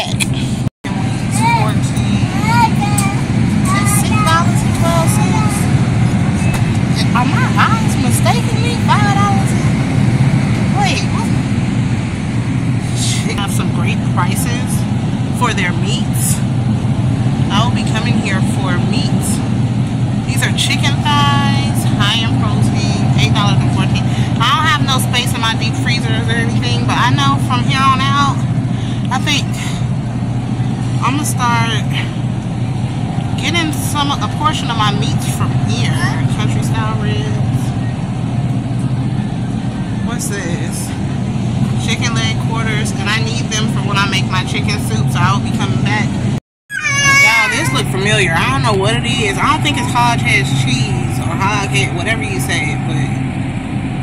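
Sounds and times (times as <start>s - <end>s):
indistinct voices talking: 0.0s - 53.5s
refrigerated display cases humming: 0.0s - 54.0s.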